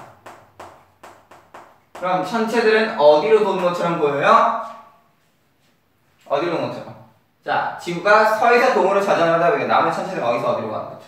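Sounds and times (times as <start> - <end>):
chalk tapping on chalkboard: 0.0 - 2.4.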